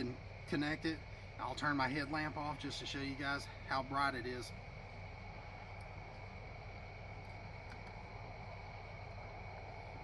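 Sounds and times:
steady low hum: 0.0s - 10.0s
faint clicks: 7.2s - 8.0s.

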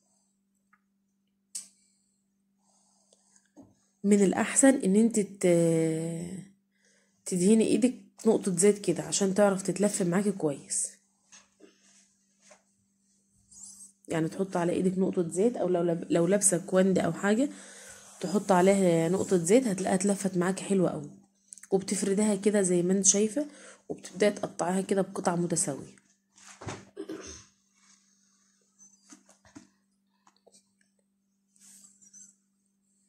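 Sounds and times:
hands rubbing dough: 18.0s - 19.8s.

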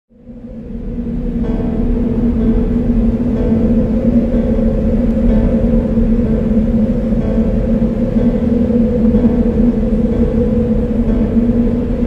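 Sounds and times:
deep rumble: 0.1s - 12.0s
faint higher chord: 0.1s - 12.0s
low droning note: 0.1s - 12.0s.

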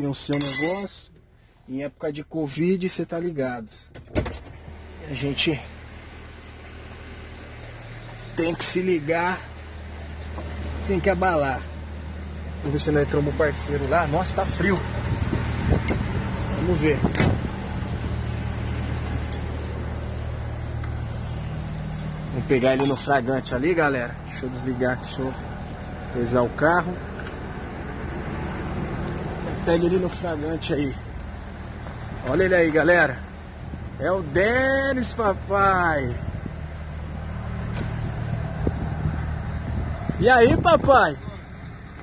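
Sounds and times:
truck diesel engine idling: 4.7s - 42.0s.

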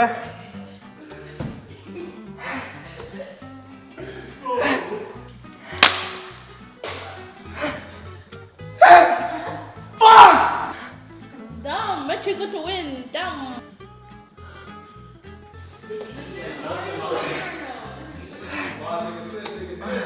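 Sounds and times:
man crying out in pain: 4.4s - 5.2s, 8.8s - 10.8s
sharp slap: 5.7s - 7.1s.

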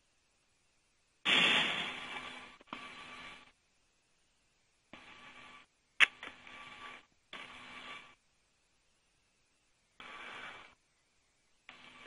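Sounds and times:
radio hiss burst with whine tones: 1.2s - 3.6s, 4.9s - 8.3s, 9.7s - 12.0s.

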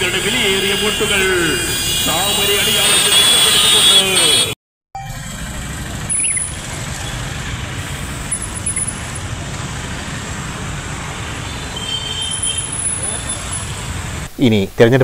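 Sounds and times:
traffic noise: 0.0s - 15.0s
scooters and motorcycles passing: 5.1s - 14.3s.

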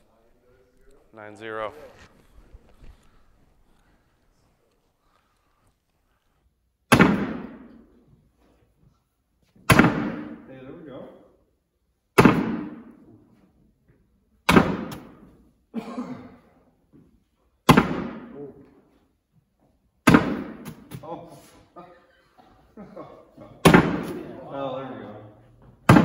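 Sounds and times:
bean bags thudding on wooden board: 20.0s - 21.0s, 23.6s - 24.3s.

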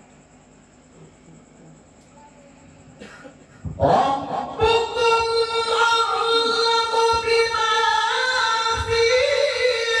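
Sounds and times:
low room hum: 0.0s - 10.0s
man reciting into microphone: 3.7s - 10.0s.

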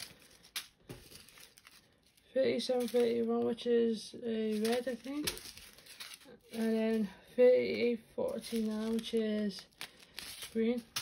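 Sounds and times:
plastic bag crinkles: 0.0s - 3.7s, 4.4s - 7.2s, 8.2s - 11.0s
soft rustling: 0.0s - 11.0s.

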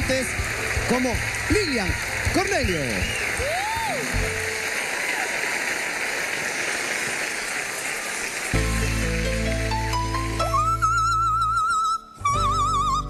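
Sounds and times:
live band playing: 0.0s - 4.8s, 8.6s - 13.0s
audience applause: 0.0s - 11.4s.

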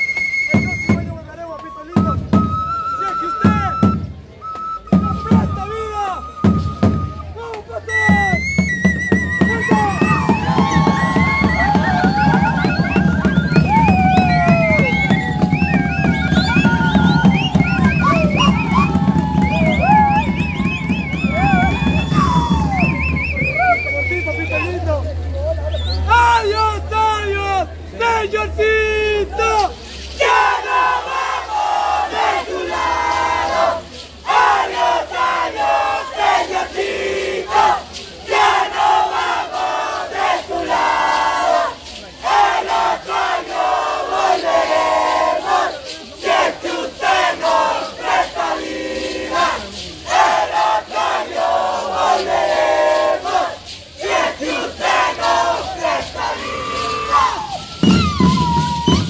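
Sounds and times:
band with drums: 0.0s - 24.9s, 29.2s - 59.0s.

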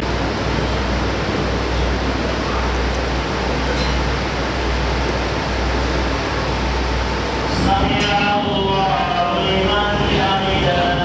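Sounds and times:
man chanting prayer: 7.5s - 11.0s.

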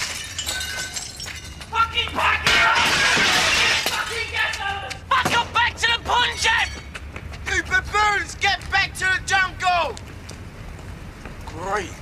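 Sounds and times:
window glass smashing: 0.0s - 1.6s, 2.4s - 4.2s.

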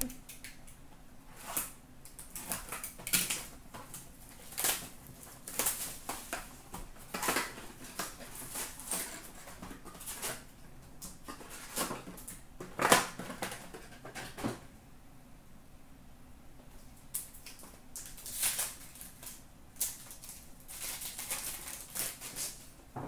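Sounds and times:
cardboard and card packs rustling: 1.3s - 10.5s, 11.1s - 14.6s, 17.6s - 22.7s.

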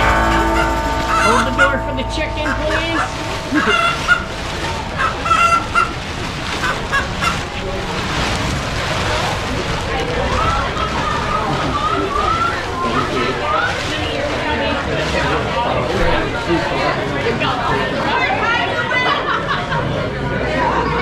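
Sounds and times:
steady rush: 0.0s - 10.7s.

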